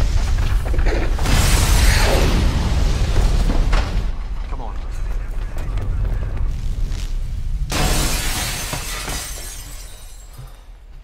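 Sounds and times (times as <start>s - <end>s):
glass door shattering: 7.7s - 10.4s.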